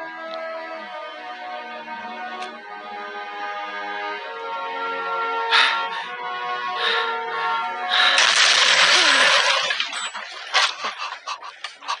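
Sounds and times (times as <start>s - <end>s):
cartoon gore splatter: 8.1s - 10.0s.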